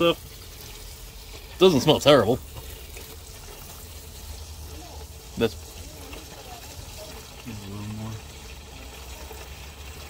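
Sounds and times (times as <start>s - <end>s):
gasoline pouring into a pan: 0.0s - 10.0s.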